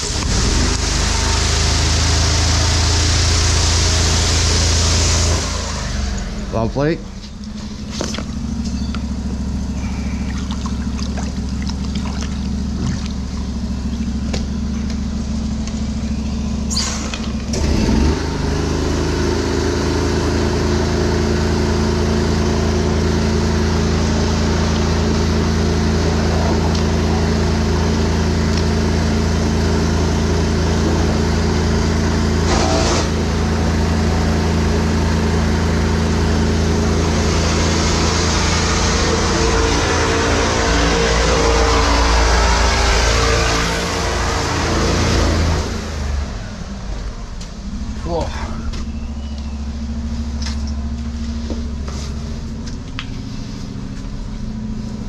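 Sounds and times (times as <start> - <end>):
engine drone: 0.0 - 55.0.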